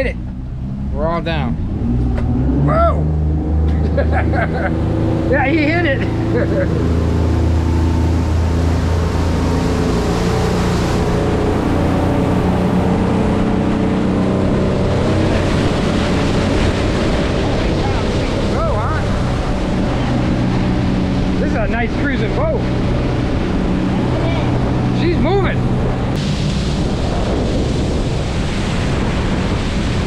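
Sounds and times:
outboard motors drone: 0:00.0 - 0:30.0
rushing wake water: 0:00.0 - 0:30.0
wind: 0:00.0 - 0:30.0.

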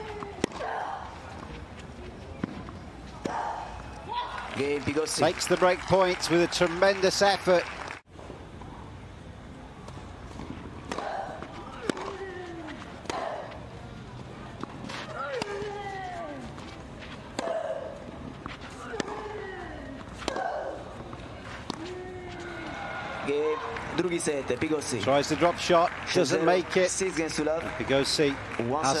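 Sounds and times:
racquets striking tennis ball: 0:10.3 - 0:13.6, 0:14.5 - 0:17.8, 0:18.4 - 0:22.5.

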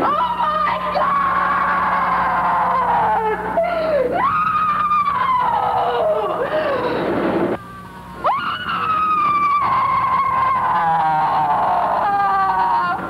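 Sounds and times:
woman screaming: 0:00.0 - 0:07.0, 0:08.2 - 0:13.0.

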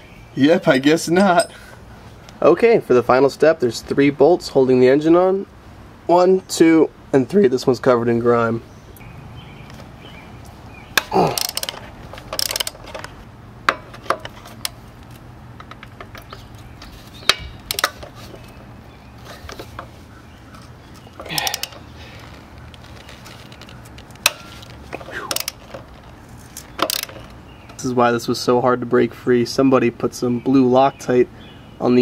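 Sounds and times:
metal clinks of wrenches: 0:00.6 - 0:01.8, 0:11.0 - 0:13.1, 0:21.2 - 0:22.0, 0:23.2 - 0:27.4
socket ratchet clicking: 0:11.0 - 0:13.1, 0:17.2 - 0:18.1, 0:25.3 - 0:25.9, 0:26.6 - 0:27.4.

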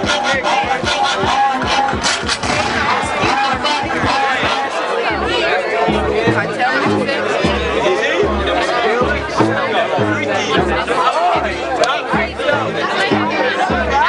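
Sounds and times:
crowd chatter: 0:00.0 - 0:14.0
dance music with bass kick: 0:00.0 - 0:14.0.

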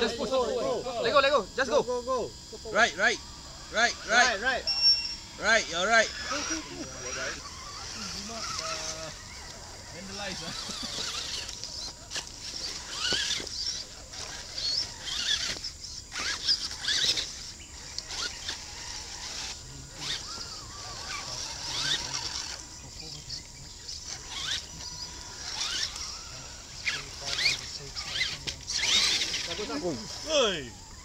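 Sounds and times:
small electric motors whining: 0:00.0 - 0:31.0.

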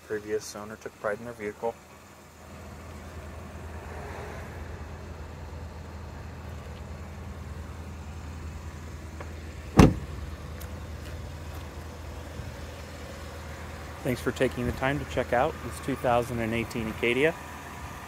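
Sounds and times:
car door shutting: 0:09.2 - 0:10.8.

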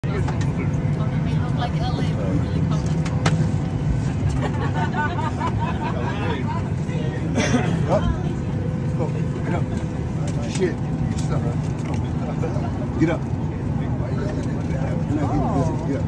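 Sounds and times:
airliner cabin hum: 0:00.0 - 0:16.0
passengers murmuring: 0:00.0 - 0:16.0.

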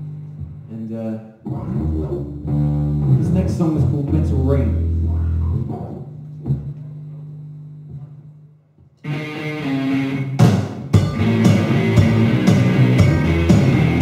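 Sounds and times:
low bass notes ringing: 0:01.4 - 0:06.8, 0:11.0 - 0:14.0
electric guitar: 0:09.0 - 0:14.0
rock band playing: 0:09.0 - 0:14.0
loud drum hits: 0:10.4 - 0:13.7.

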